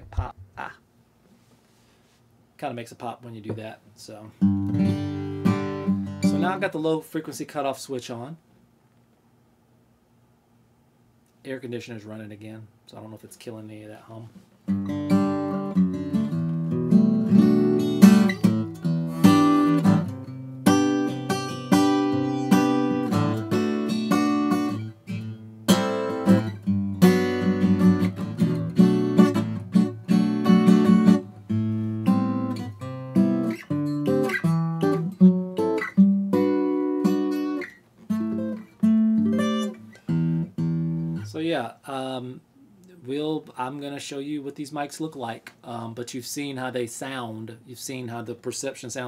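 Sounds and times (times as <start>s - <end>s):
acoustic guitar strumming: 4.4s - 6.8s, 14.7s - 41.3s.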